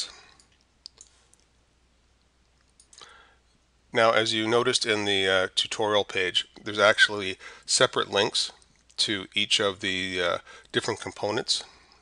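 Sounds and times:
computer mouse clicking: 0.4s - 1.5s.

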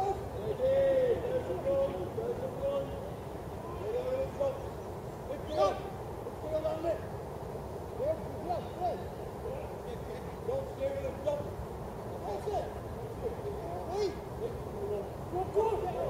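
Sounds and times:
distant players shouting: 0.0s - 7.2s, 8.0s - 16.0s.

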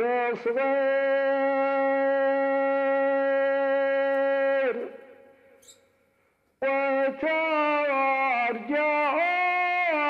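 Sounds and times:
man singing a long note: 0.0s - 5.0s, 6.6s - 10.0s
echo of voice: 0.0s - 5.6s, 6.5s - 10.0s.

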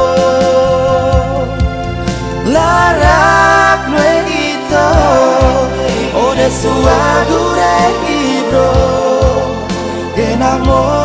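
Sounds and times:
pop song with drum beat: 0.0s - 11.0s.

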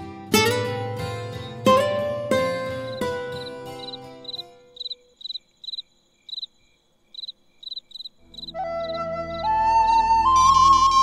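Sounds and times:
crickets chirping: 0.7s - 9.7s.

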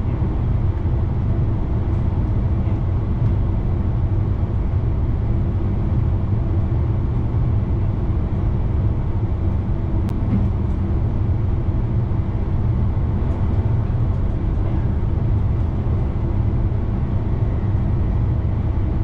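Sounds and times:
electric train low rumble: 0.0s - 19.0s.

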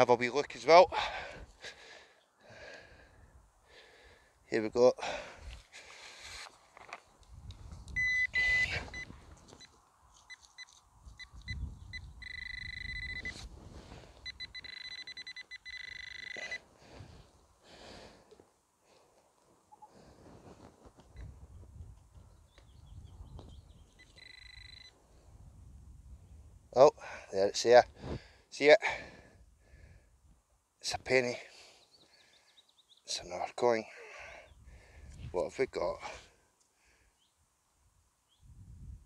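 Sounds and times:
metal detector probe beeping: 7.9s - 13.5s, 14.1s - 16.7s, 23.8s - 25.0s
hands rustling soil: 16.6s - 22.2s.

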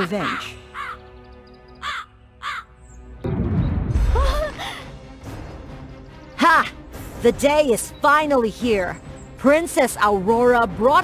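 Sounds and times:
crow cawing: 0.0s - 1.2s, 1.8s - 2.8s
background music: 0.0s - 11.0s.

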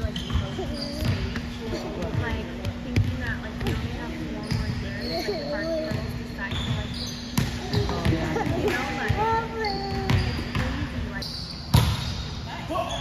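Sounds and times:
players' voices: 0.0s - 11.2s
steady low hum: 0.0s - 12.7s
sneaker squeaks: 0.0s - 13.0s.

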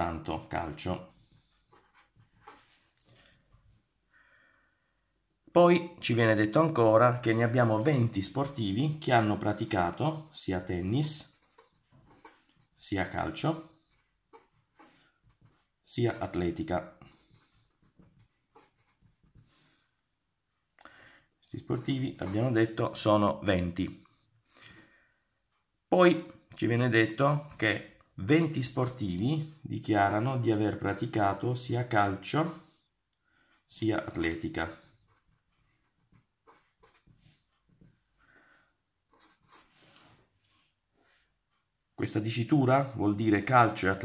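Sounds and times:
pen scratching on paper: 0.4s - 2.8s, 10.6s - 19.8s, 21.6s - 22.9s, 29.8s - 31.5s, 34.0s - 38.0s, 39.1s - 39.9s.

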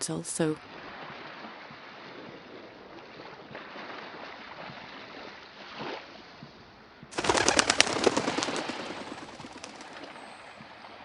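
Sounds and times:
flock of birds wings fluttering: 7.1s - 10.7s.

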